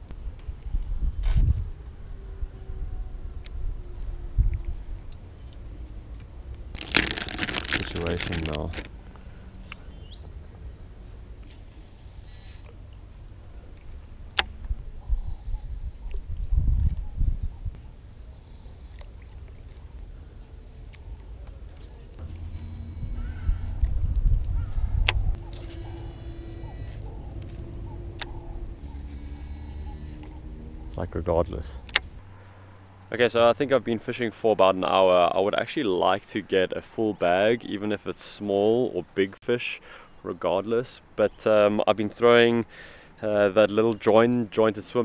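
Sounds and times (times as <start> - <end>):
low rumble: 22.1 - 32.8.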